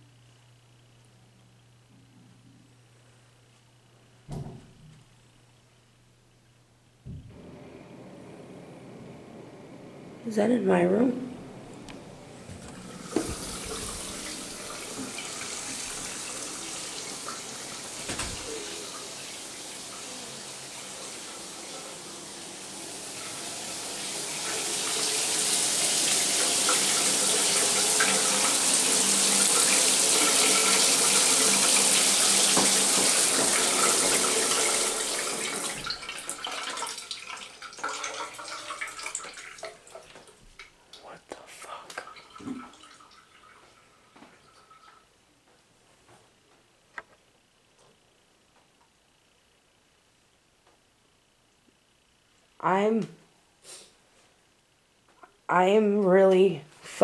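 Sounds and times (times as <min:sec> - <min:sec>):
water running from faucet: 0:10.2 - 0:40.2, 0:42.0 - 0:45.0.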